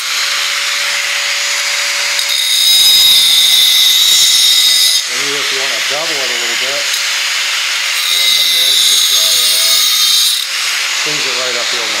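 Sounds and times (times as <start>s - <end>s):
angle grinder grinding tile: 0.0s - 12.0s.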